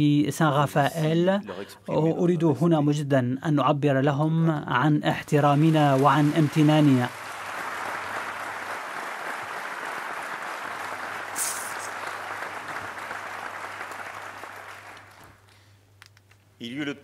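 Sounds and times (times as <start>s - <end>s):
large audience applauding: 5.3s - 15.6s.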